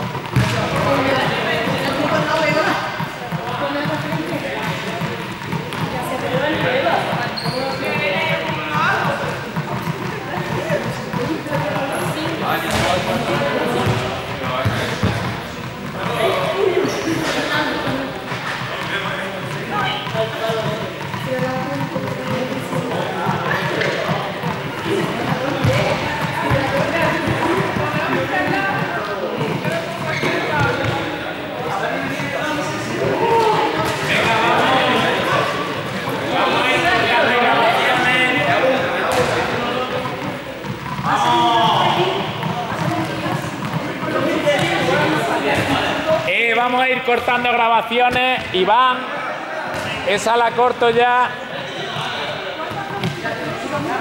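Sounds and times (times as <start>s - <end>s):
balls bouncing on hall floor: 0.0s - 48.8s, 49.6s - 54.0s
echoing chatter of voices: 0.0s - 54.0s.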